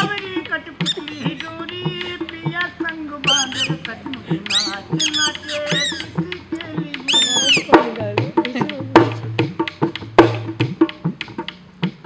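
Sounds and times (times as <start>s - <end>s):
drum beating: 0.0s - 12.0s
shrill squeaky reed whistle squawks: 0.8s - 1.4s, 3.2s - 3.8s, 4.5s - 6.1s, 7.1s - 7.7s.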